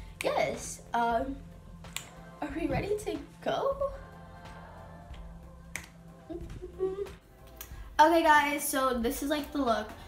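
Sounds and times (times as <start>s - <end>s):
finger snap: 0.1s - 0.8s, 1.8s - 2.2s, 4.5s - 7.8s.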